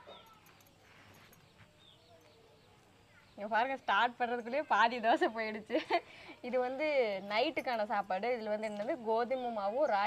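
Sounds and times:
faint high chirps: 0.0s - 3.5s.

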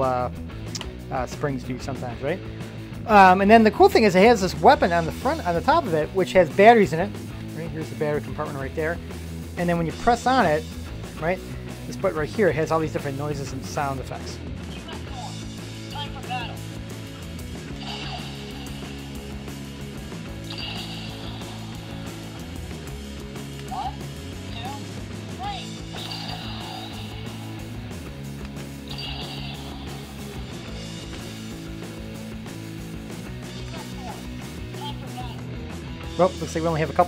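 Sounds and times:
background music: 0.0s - 37.0s
toy electronic sound effects: 17.8s - 18.9s, 20.5s - 22.3s, 25.6s - 27.4s, 28.9s - 30.4s.

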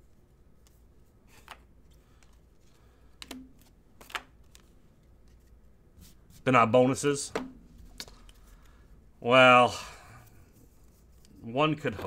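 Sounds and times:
trading cards flipped by hand: 0.6s - 6.2s, 7.4s - 8.8s.

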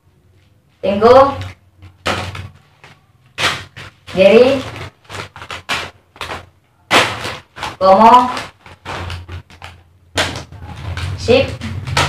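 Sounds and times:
plastic snack packets rustling: 1.4s - 12.0s.

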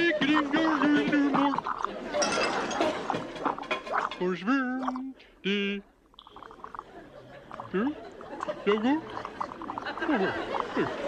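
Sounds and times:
mock chatter voice: 0.0s - 2.0s, 4.2s - 11.0s
wet gurgling and bubbling: 0.0s - 5.2s, 6.0s - 11.0s.

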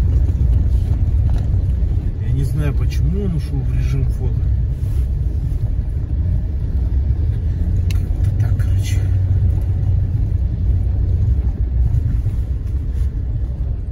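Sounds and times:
car engine and tyres rumbling: 0.0s - 13.9s.

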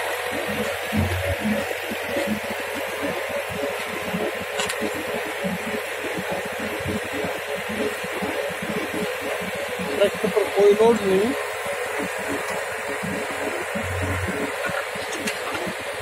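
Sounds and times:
clay mixing machine running: 0.0s - 16.0s.

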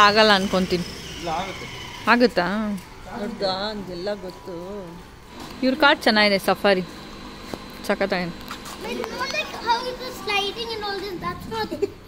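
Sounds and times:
child talking and calling out: 8.8s - 12.0s.

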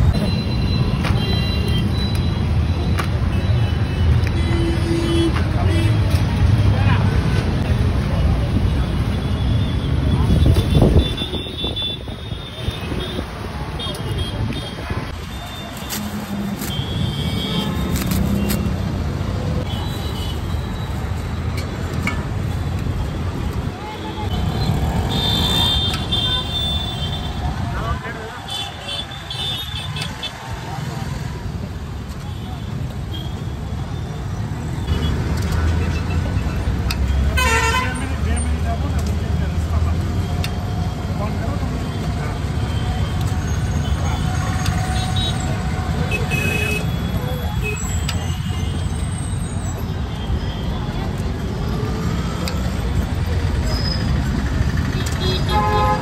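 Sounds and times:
traffic engine rumble: 0.0s - 56.0s
vehicle horns honking: 37.3s - 38.1s, 55.0s - 56.0s.

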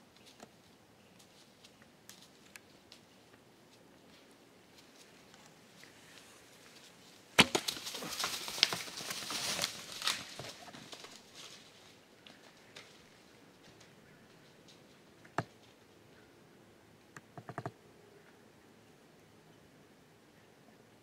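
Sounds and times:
footfalls crunching through dry grass: 1.2s - 14.6s
cluster of clicks: 13.7s - 15.8s.

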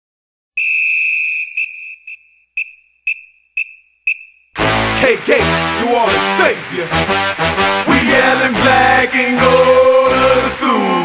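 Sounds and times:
shrill whistle blasts: 0.6s - 4.5s.

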